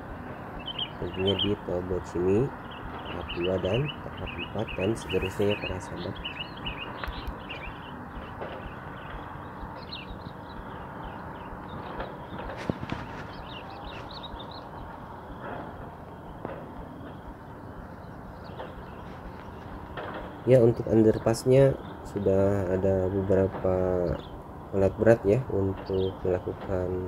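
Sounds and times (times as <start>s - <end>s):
low background hum: 0.0s - 27.0s
small birds chirping: 0.0s - 27.0s.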